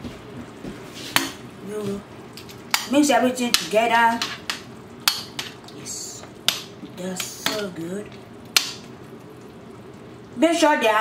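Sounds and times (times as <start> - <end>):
sauce sizzling: 0.2 - 11.0
metal spoon stirring in pan: 2.4 - 7.8.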